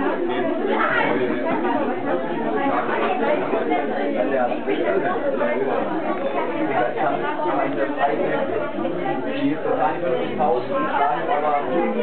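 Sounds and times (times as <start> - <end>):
many people chattering: 0.0 - 12.0.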